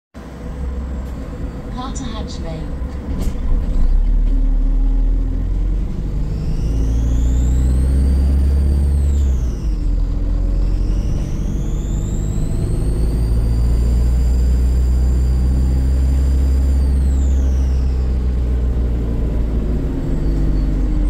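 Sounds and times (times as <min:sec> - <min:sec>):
bus diesel engine rumble: 0:00.2 - 0:21.0
high-pitched turbo whistle: 0:06.0 - 0:18.4.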